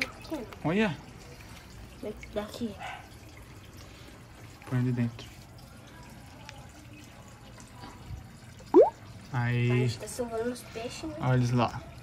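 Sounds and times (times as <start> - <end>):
water dripping and splashing: 0.0 - 12.0.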